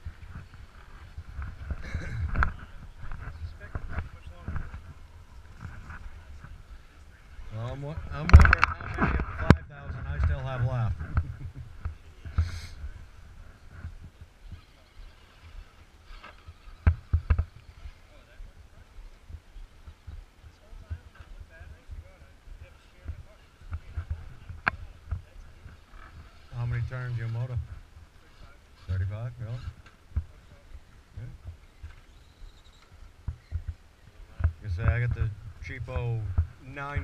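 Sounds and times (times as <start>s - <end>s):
man laughing and speaking: 1.8s - 2.4s, 10.9s - 11.8s
sharp clicks and knocks: 8.2s - 10.4s
small electric motors whining: 31.6s - 33.7s.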